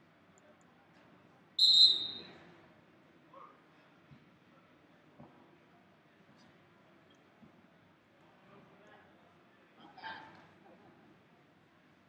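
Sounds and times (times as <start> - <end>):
referee whistle blast: 1.6 - 2.3.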